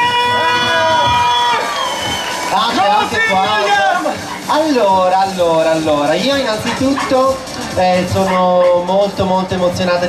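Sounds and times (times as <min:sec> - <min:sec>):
low crowd murmur: 0:00.0 - 0:10.0.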